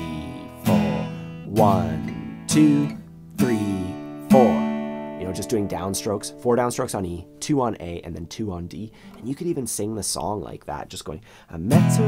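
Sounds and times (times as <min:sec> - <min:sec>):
acoustic guitar strums: 0:00.0 - 0:10.6, 0:11.3 - 0:12.0.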